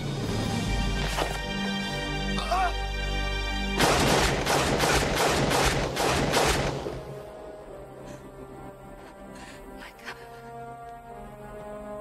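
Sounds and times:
film score sustained notes: 0.0s - 3.8s, 5.8s - 12.0s
rapid gunfire: 3.8s - 6.8s.

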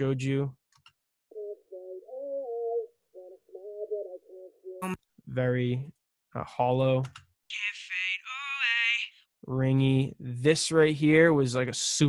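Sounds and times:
thin filtered singing voice: 1.3s - 5.0s.

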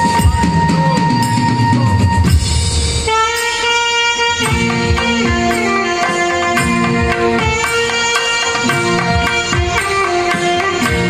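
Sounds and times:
saxophone melody: 0.0s - 11.0s
tabla: 0.0s - 11.0s.

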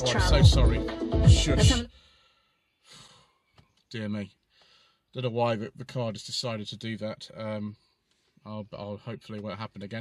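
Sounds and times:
man speaking: 0.0s - 1.9s, 3.9s - 4.3s, 5.2s - 7.8s, 8.5s - 10.0s
man sighing: 2.9s - 3.4s.

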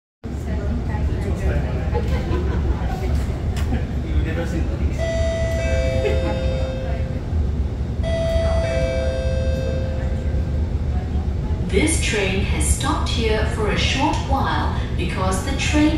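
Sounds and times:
train carriage hum: 0.2s - 15.9s
descending two-note chime: 5.0s - 7.2s, 8.0s - 10.5s.

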